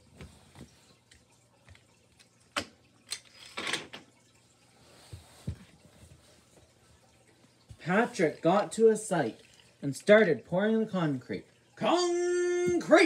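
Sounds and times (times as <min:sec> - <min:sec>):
toy vehicles set down on hard floor: 0:02.6 - 0:04.0.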